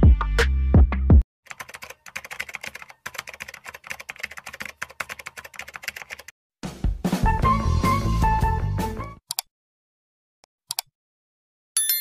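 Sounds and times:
rapid keyboard typing: 1.5s - 6.3s.

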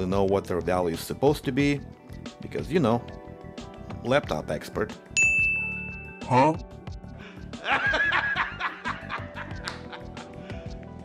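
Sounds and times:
background music: 0.0s - 11.0s
man laughing heartily: 7.4s - 10.6s.

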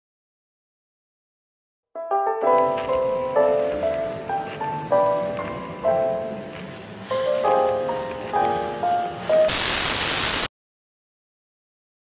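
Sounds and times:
music melody: 2.0s - 9.5s
loud tv static hiss: 9.5s - 10.5s.

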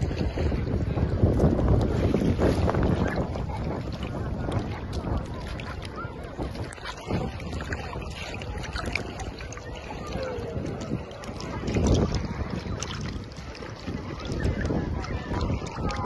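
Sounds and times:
seawater sloshing and splashing: 0.0s - 16.0s
wind on microphone: 0.0s - 16.0s.

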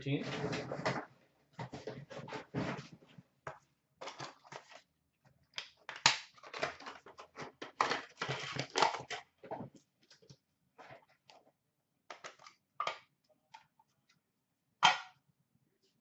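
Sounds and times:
packaging rustling and crinkling: 5.9s - 9.2s.

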